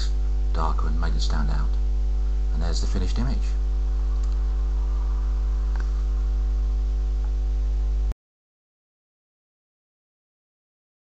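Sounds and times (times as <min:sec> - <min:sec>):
electrical mains hum: 0:00.0 - 0:08.2.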